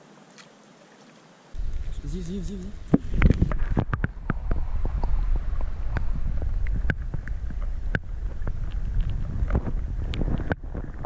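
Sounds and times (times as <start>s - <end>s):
water splashing: 0.0s - 11.0s
muffled water sloshing: 1.6s - 11.0s.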